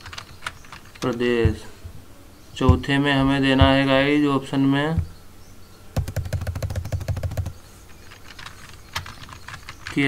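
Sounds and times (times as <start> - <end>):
laptop keystrokes clicking: 6.0 - 7.6.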